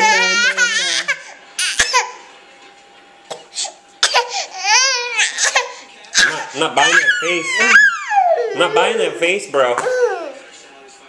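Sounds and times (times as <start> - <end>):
baby crying: 0.0 - 2.2, 4.0 - 10.4.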